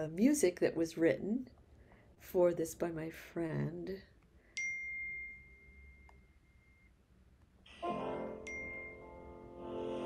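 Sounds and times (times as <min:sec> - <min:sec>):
high ringing chime note: 0:04.6 - 0:07.0, 0:07.7 - 0:09.6.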